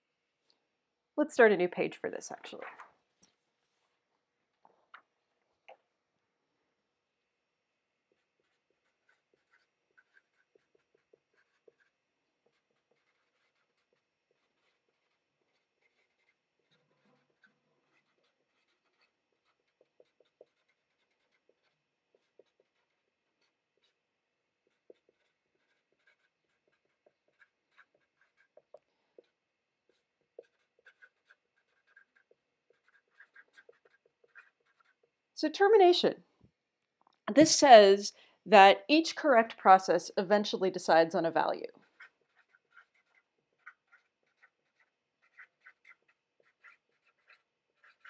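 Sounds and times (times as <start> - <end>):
marker scratching on paper: 8.0 - 35.2, 41.7 - 48.0.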